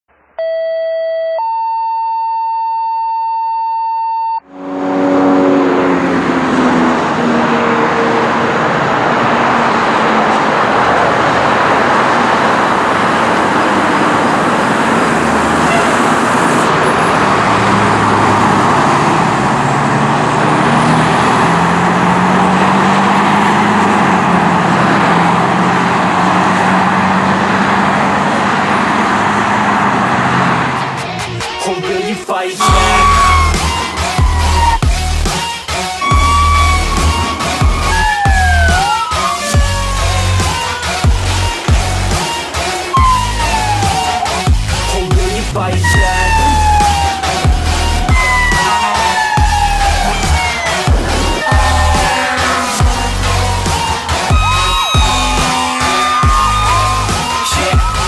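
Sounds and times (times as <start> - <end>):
siren wailing: 0.4 - 27.4, 32.6 - 58.0
steady electronic tone: 4.4 - 6.8, 32.6 - 35.4, 36.0 - 38.9, 45.8 - 48.6, 54.3 - 58.0
fire engine running: 4.4 - 58.0.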